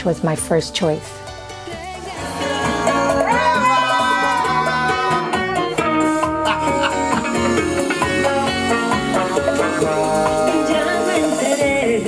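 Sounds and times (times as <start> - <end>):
salsa music with guitar: 1.5 - 12.0.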